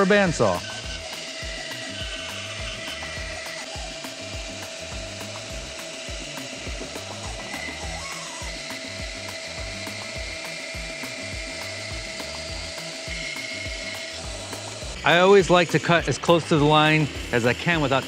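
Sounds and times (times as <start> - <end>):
background music with steady beat: 0.0 - 18.0
bandsaw cutting wood: 0.0 - 18.0.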